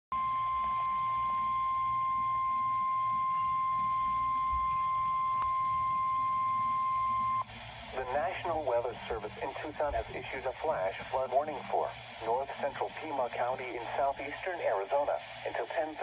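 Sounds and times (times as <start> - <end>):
high-pitched alarm tone: 0.2 - 7.5.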